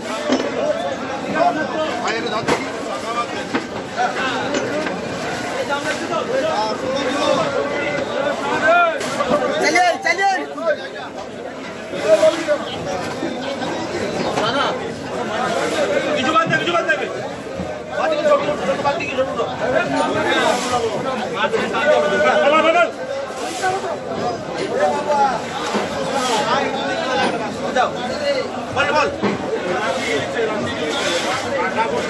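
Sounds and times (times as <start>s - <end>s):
crowd chatter: 0.0s - 32.0s.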